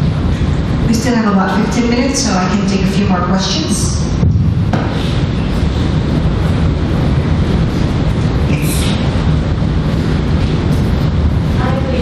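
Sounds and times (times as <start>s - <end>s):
rumbling noise with hiss: 0.0s - 12.0s.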